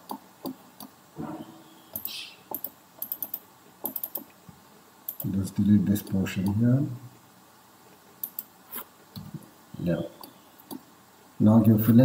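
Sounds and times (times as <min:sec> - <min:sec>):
computer mouse clicks: 0:01.9 - 0:04.4, 0:05.1 - 0:05.3, 0:08.2 - 0:09.3.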